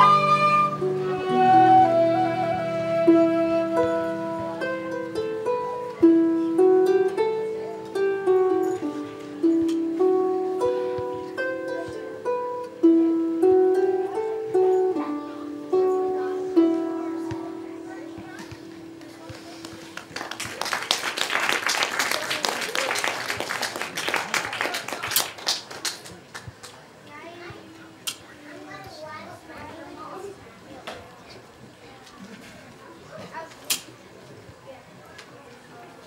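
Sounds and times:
harp and plucked strings: 0.0s - 20.6s
light chatter: 0.0s - 36.0s
audience applause: 19.6s - 26.5s.

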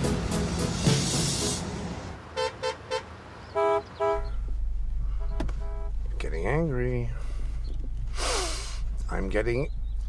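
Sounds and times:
rushing noise: 0.0s - 2.2s
car horns honking: 2.2s - 6.1s
low engine rumble: 3.4s - 10.0s.

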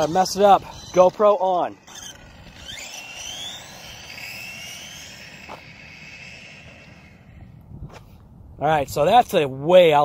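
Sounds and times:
rc car electric motor whining: 0.0s - 7.6s.

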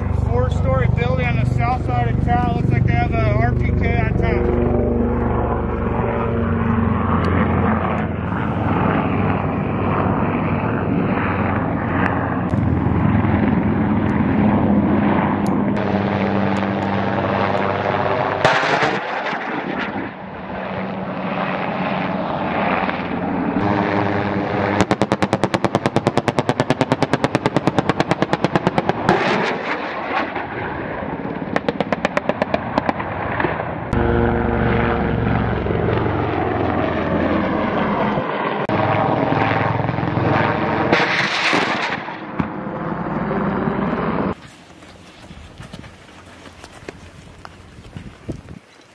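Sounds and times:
rising whine: 0.0s - 26.0s, 33.2s - 45.2s
helicopter passing low overhead: 0.0s - 48.9s.

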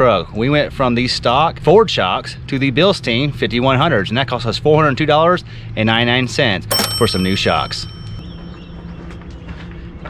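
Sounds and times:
bell-like ding: 6.7s - 9.0s.

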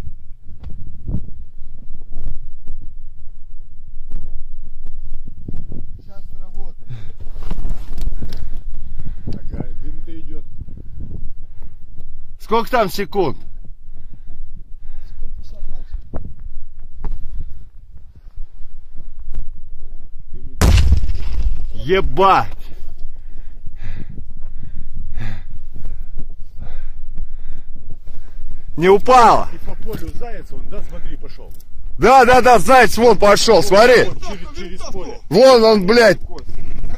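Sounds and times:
wind buffeting microphone: 0.0s - 12.4s, 13.5s - 20.6s, 21.3s - 32.0s
low rumble: 20.5s - 23.7s
men's muffled voices: 28.7s - 36.9s.

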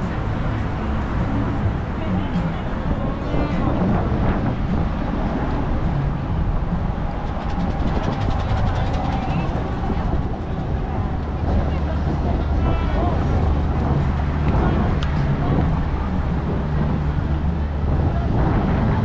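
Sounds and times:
low engine hum: 0.0s - 19.0s
pedestrian crowd chatter: 0.0s - 19.0s
traffic noise: 0.0s - 19.0s.

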